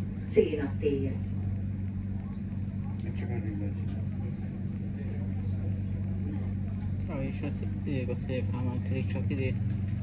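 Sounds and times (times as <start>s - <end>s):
tram equipment humming: 0.0s - 10.0s.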